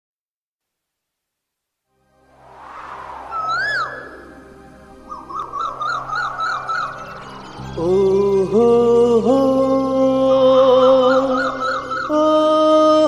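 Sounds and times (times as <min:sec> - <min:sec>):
whooshing swell: 0:01.9 - 0:09.2
low instrumental drone: 0:02.0 - 0:13.0
warbling bird trill: 0:02.8 - 0:13.0
sliding bird call: 0:03.2 - 0:07.7.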